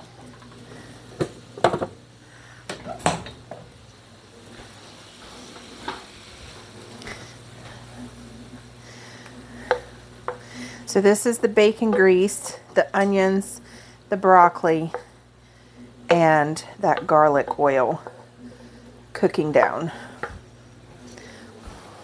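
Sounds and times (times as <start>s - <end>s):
food sizzling in a frying pan: 0.0s - 20.9s
faint steady hum: 0.0s - 22.0s
cookware and utensils clinking: 11.1s - 13.6s.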